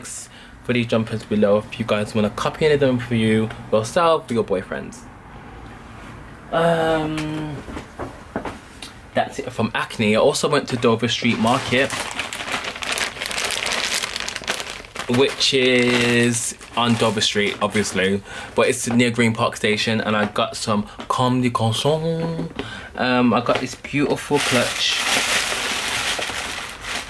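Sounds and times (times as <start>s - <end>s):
plastic bags crinkling: 10.4s - 18.2s, 23.3s - 27.0s.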